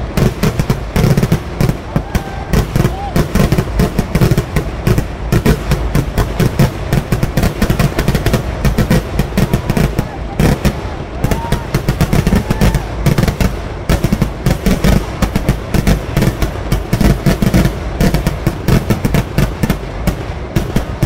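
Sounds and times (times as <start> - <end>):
fireworks explosions: 0.0 - 21.0.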